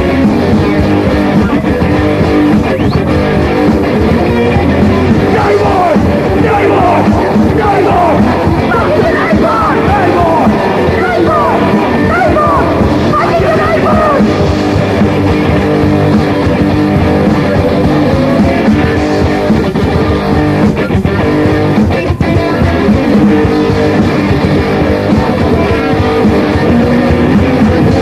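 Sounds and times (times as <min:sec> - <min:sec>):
punk rock band playing: 0:00.0 - 0:28.0
person shouting vocals: 0:05.2 - 0:14.3.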